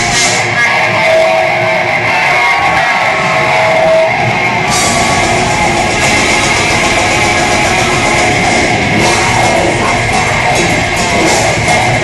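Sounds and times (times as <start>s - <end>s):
metal band playing: 0.0s - 12.0s.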